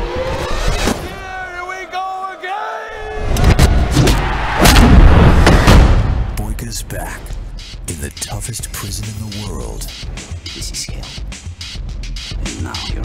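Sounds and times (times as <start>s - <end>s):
deep booms and heavy impacts: 3.4s - 6.6s.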